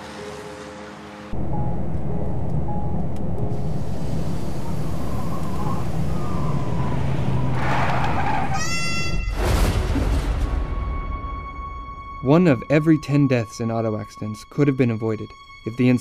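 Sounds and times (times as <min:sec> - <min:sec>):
road rumble inside car: 0:01.4 - 0:08.6
loud car crash: 0:09.3 - 0:11.1.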